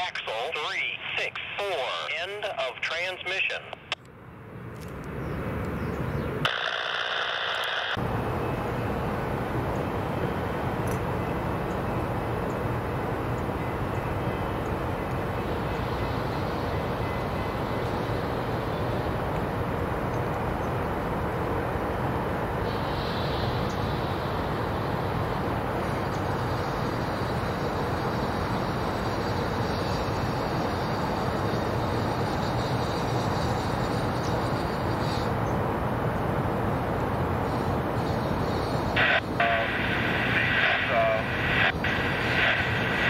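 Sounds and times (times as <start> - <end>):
distant passenger train: 0.0 - 6.5, 8.0 - 43.0
city traffic rumble: 0.0 - 6.6, 7.2 - 43.0.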